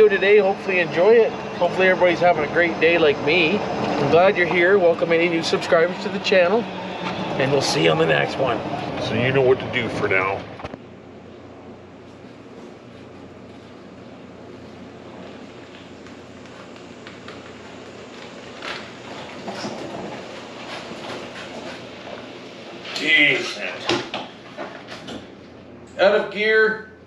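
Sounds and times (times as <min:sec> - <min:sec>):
electric cart motor: 0:00.0 - 0:10.7, 0:15.2 - 0:23.7.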